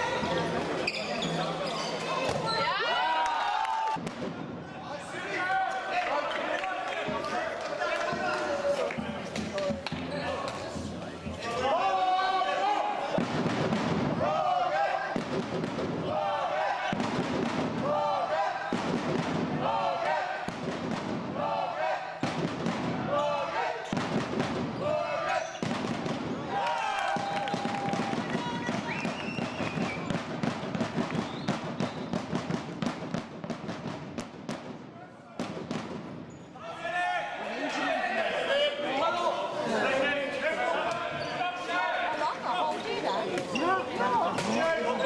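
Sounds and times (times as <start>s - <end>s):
voices shouting in sports hall: 0.0s - 13.4s, 14.0s - 20.6s, 21.3s - 30.2s, 36.3s - 45.0s.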